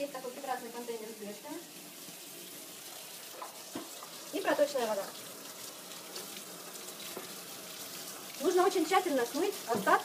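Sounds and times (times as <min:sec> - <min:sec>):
tap water running into a steel sink: 0:00.0 - 0:10.0.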